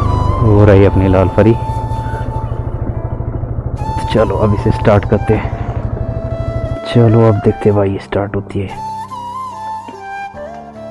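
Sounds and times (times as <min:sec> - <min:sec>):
motorcycle engine idling: 0:00.0 - 0:10.9.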